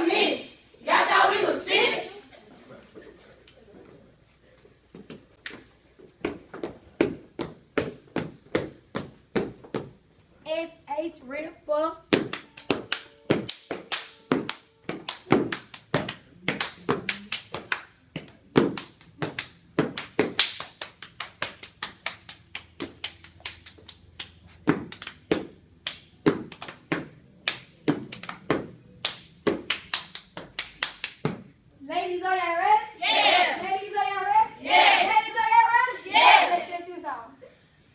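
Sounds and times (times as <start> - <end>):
hand claps: 12.2 - 31.4.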